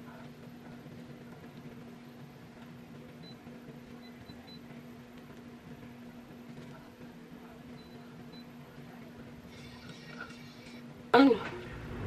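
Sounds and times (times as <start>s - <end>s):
low electrical hum: 0.0s - 12.0s
faint high beeps: 7.8s - 8.5s.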